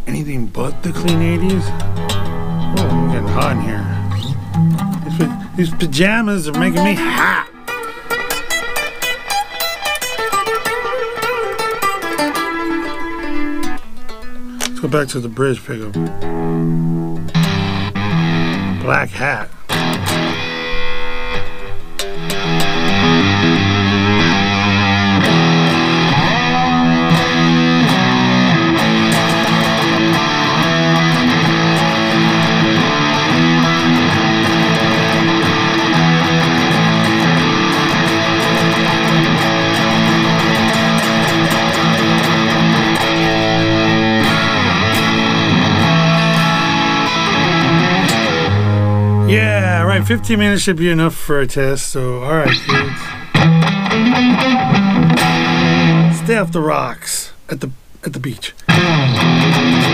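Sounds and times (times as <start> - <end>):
electric guitar riffs and leads: 0.0 - 51.4, 52.2 - 56.9, 58.6 - 59.9
drum backing track: 0.8 - 7.0.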